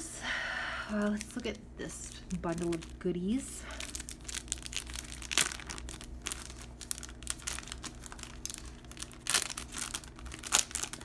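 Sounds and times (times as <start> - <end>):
cellophane and papers crinkling: 0.9 - 11.0.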